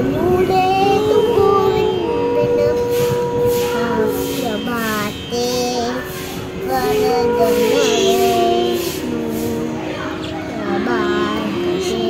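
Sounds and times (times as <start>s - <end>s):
young girl singing: 0.0s - 12.0s.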